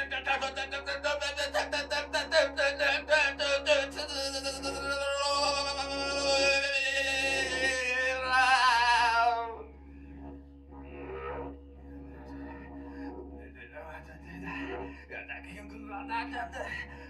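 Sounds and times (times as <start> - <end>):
man singing strained note: 0.0 - 9.6
scattered vocal and room sounds: 0.0 - 17.0
steady low hum: 0.0 - 17.0.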